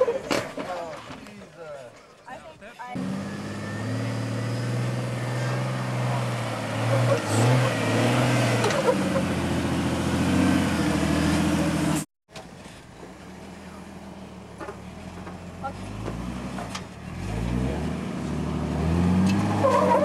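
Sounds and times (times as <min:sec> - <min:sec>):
engine running under load: 0:03.0 - 0:20.0.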